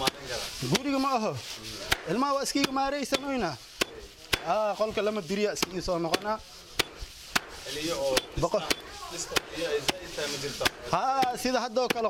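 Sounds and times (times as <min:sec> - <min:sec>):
sharp blows into dry straw: 0:00.0 - 0:11.6
man talking: 0:07.6 - 0:12.0.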